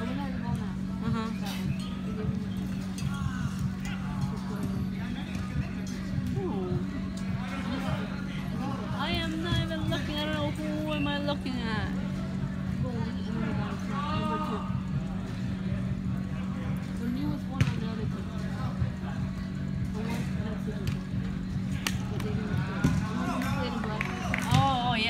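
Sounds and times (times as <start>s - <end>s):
players' voices and calls: 0.0s - 25.0s
steady low hum: 0.0s - 25.0s
ball kicks: 17.6s - 18.2s, 22.0s - 23.3s, 24.3s - 24.9s.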